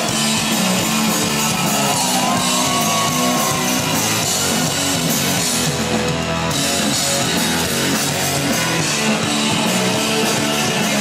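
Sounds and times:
drums: 0:00.0 - 0:11.0
electric guitars: 0:00.0 - 0:11.0.

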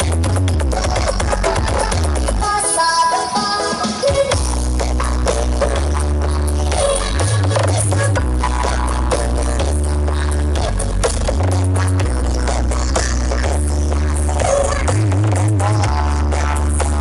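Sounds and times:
heavy bass music over loudspeakers: 0:00.0 - 0:17.0.

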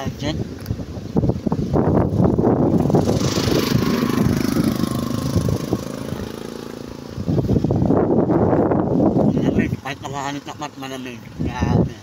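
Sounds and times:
wind buffeting microphone: 0:00.0 - 0:12.0
vehicle engine passing: 0:02.5 - 0:10.5.

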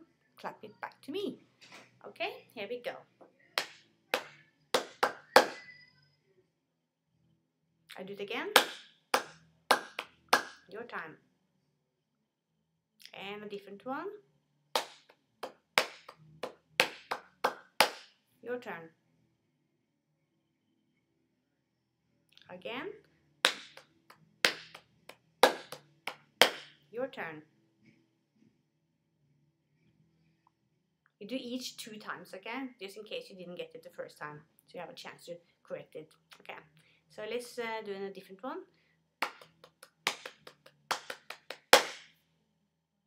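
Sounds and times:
hand claps: 0:03.6 - 0:05.7, 0:08.6 - 0:10.6, 0:14.8 - 0:18.1, 0:23.4 - 0:26.7, 0:39.2 - 0:42.1.

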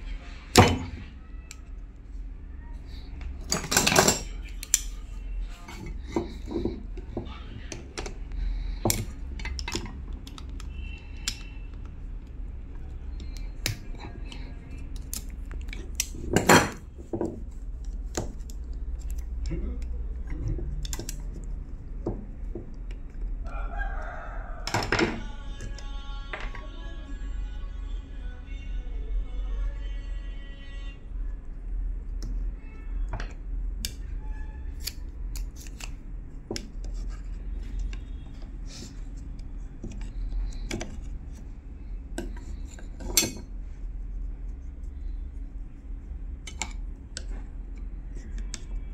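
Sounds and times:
blade snipping thread: 0:34.7 - 0:36.0.

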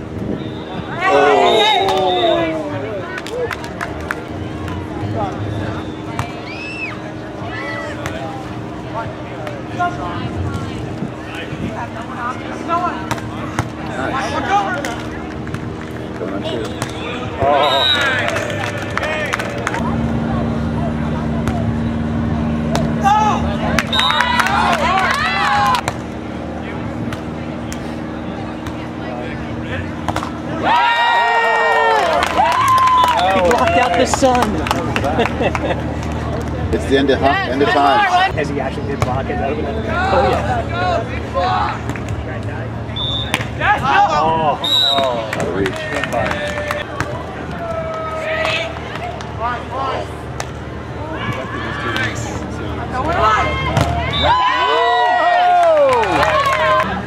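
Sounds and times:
people calling out and talking: 0:00.2 - 0:57.0.

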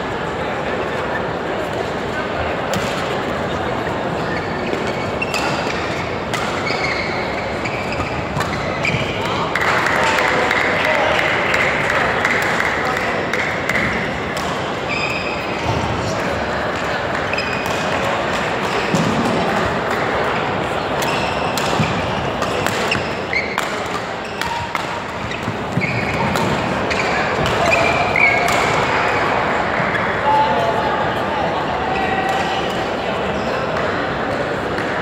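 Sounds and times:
hubbub of voices: 0:00.0 - 0:35.0
court shoes squeaking: 0:02.6 - 0:30.8.

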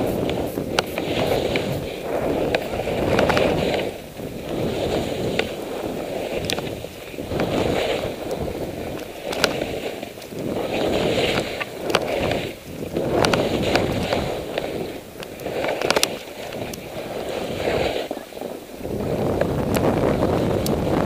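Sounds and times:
skis scraping over snow: 0:00.0 - 0:21.0
wind on microphone: 0:00.0 - 0:21.0.

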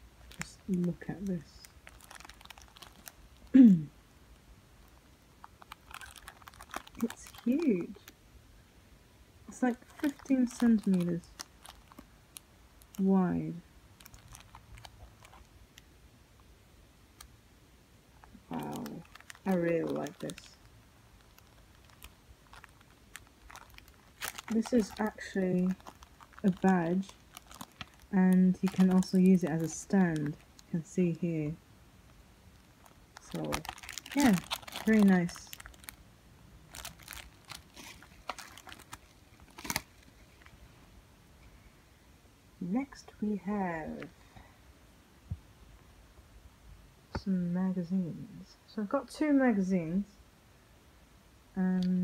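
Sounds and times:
plastic bag crinkling: 0:00.2 - 0:03.6, 0:05.4 - 0:08.2, 0:09.5 - 0:13.4, 0:14.0 - 0:15.6, 0:18.2 - 0:31.0, 0:32.5 - 0:36.0, 0:36.6 - 0:40.6.

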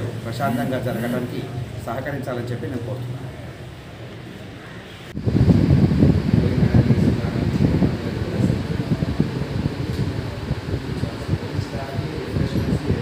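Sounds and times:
wind buffeting microphone: 0:05.1 - 0:13.0.

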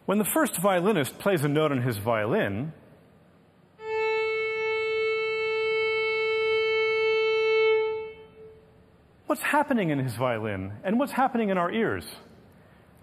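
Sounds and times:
bowed violin note: 0:03.8 - 0:08.6.

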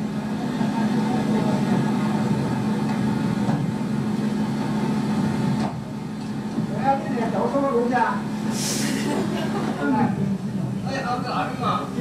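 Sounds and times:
bus engine idling: 0:00.0 - 0:12.0.

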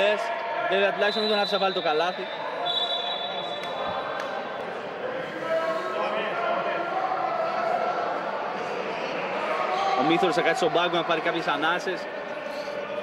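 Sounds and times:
background voices in a gym: 0:00.0 - 0:13.0.

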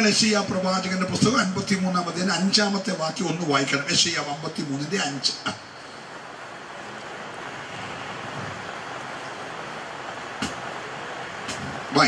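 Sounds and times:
even hiss: 0:00.0 - 0:12.0.

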